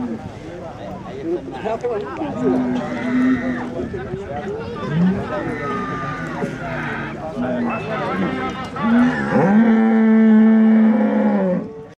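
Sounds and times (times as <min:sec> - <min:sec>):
bull bellowing: 0:04.9 - 0:11.8.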